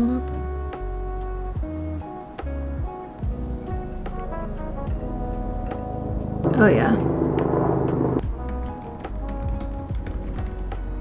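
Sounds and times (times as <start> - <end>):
background music with low bass: 0.0 - 11.0
typing on computer keyboard: 8.2 - 10.7.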